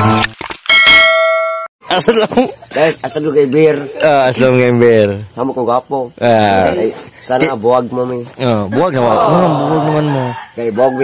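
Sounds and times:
man imitating rooster crowing: 8.6s - 11.0s.

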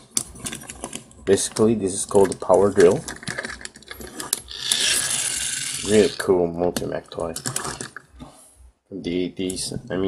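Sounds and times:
plastic toy parts clicking: 0.0s - 6.2s, 6.8s - 8.0s
toy friction motor whirring: 2.9s - 6.3s.

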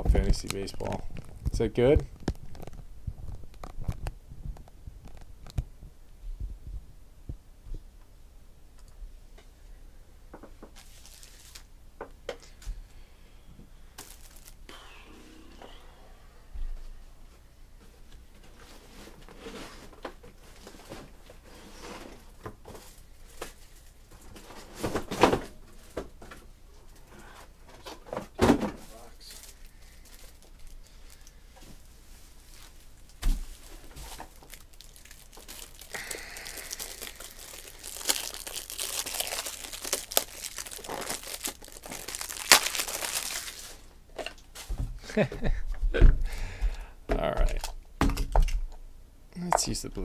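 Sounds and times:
packaging crinkling and tearing: 10.8s - 11.7s, 14.0s - 14.7s, 28.9s - 31.3s, 32.5s - 43.9s.

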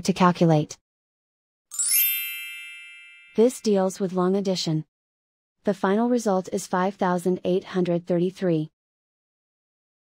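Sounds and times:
bright bell-like chime: 1.7s - 3.7s.

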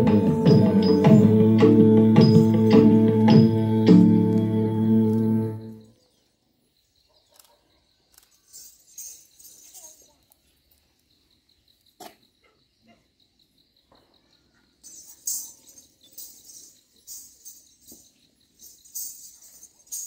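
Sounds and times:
metallic jingling: 8.2s - 10.2s, 14.7s - 20.0s.

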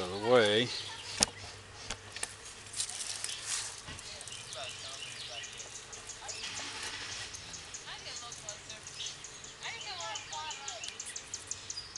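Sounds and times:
small birds chirping: 0.0s - 11.9s
steady outdoor hiss: 0.0s - 11.9s.

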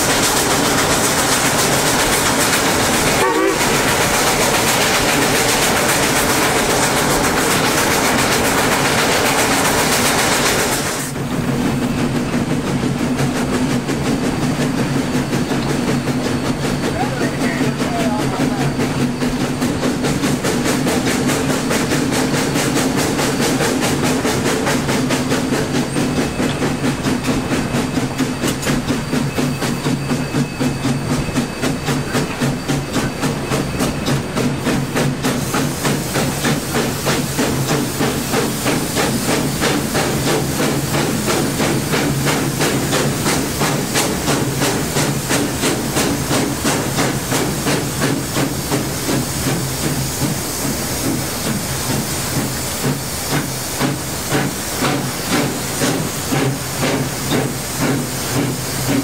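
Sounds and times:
steam hissing: 0.0s - 59.0s
steam locomotive exhaust beats: 0.0s - 59.0s.

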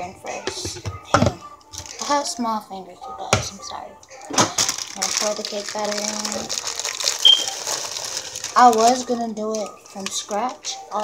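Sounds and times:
plastic bag crinkling: 1.7s - 2.3s, 4.1s - 11.0s
high squeak: 7.2s - 7.6s.

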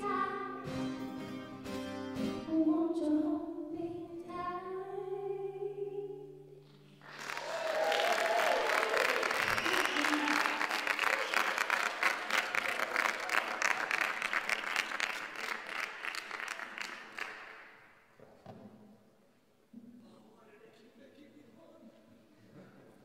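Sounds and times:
audience applauding: 7.0s - 17.8s.

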